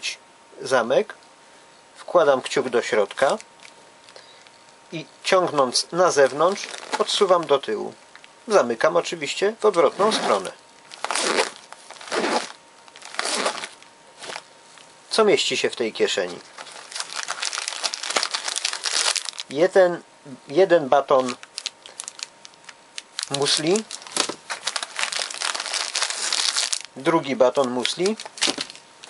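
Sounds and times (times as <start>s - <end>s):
plastic wrapper crinkling: 5.5s - 8.3s, 9.4s - 14.9s, 16.2s - 19.6s, 21.1s - 28.9s
nylon fabric rustling: 6.1s - 7.5s, 9.6s - 14.5s, 23.2s - 26.9s, 27.6s - 28.8s
zipper being slid shut: 11.1s - 12.5s, 13.2s - 13.7s.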